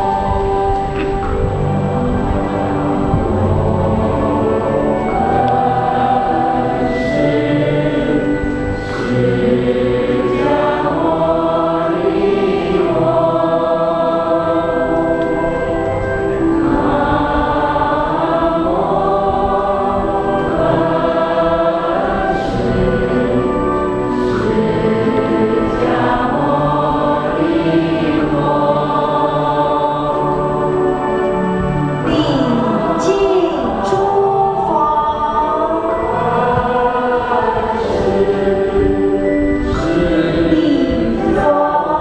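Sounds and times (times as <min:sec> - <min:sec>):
choir singing a slow hymn: 0:00.0 - 0:42.0.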